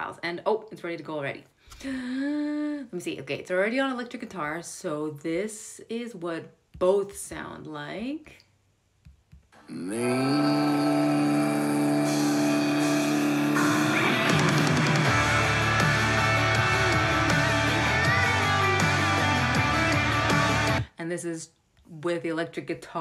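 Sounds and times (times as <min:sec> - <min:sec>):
rock song with distorted guitars: 0:12.0 - 0:20.9.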